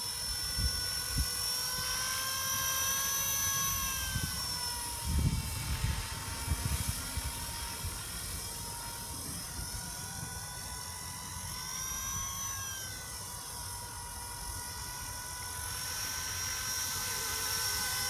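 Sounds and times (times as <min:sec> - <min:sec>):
rc helicopter motor and rotor whine: 0:00.0 - 0:18.0.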